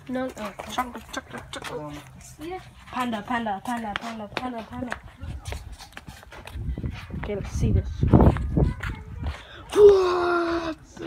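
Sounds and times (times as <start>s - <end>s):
faint voices: 0.0s - 11.0s
footsteps on pavement: 0.0s - 11.0s.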